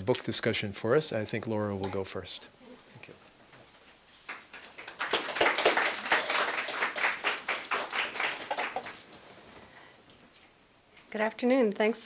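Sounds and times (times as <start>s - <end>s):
audience applauding: 4.3s - 9.2s.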